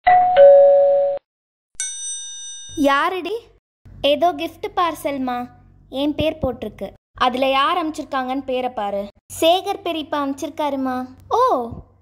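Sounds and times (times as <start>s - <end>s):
bright high ringing ding: 0.1s - 1.2s, 1.8s - 2.8s
doorbell ding-dong chime: 0.1s - 1.2s.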